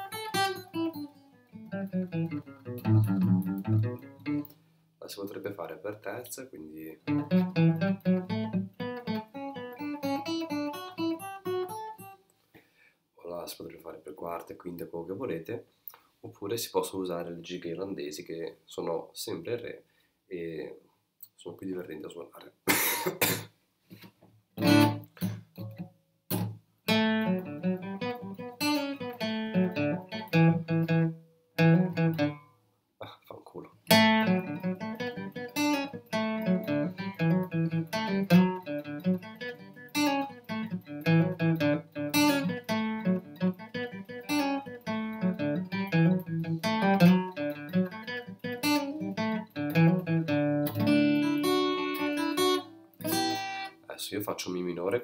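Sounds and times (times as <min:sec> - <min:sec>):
acoustic guitar picked melody: 0:00.0 - 0:04.8, 0:07.0 - 0:12.5, 0:23.2 - 0:32.6, 0:33.8 - 0:53.9.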